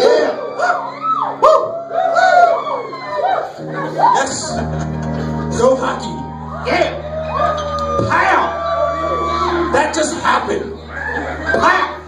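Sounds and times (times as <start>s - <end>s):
howling pitch glides: 0.3s - 10.0s
live band holding a chord: 3.6s - 12.0s.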